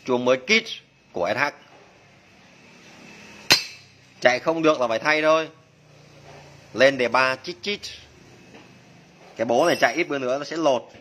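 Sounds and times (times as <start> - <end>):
metallic clank: 3.5 - 4.0.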